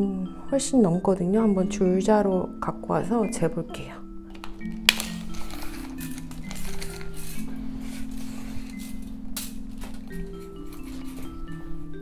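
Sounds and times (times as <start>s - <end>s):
soft mallet music: 0.0s - 12.0s.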